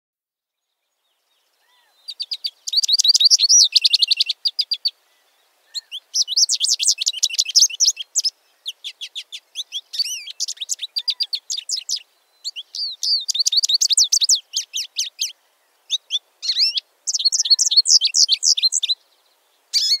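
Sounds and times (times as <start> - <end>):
finch singing high twittering: 1.6 - 4.9, 5.7 - 19.0, 19.7 - 20.0.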